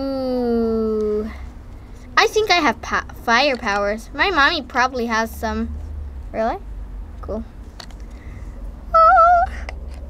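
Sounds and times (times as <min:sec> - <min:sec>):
doll voice whining: 0:00.0 - 0:01.4, 0:08.9 - 0:09.7.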